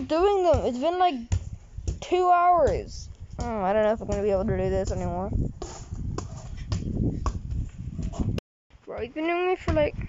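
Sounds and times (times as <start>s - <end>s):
football thumps on feet: 0.0s - 8.4s.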